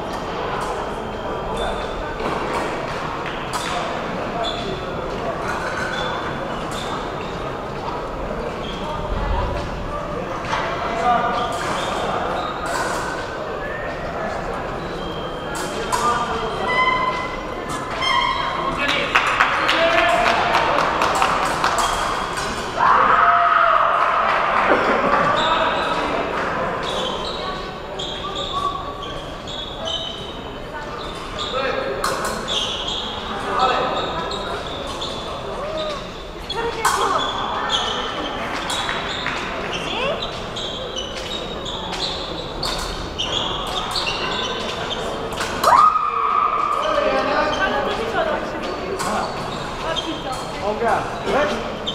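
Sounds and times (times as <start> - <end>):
people talking in a hall: 0.0 - 51.9.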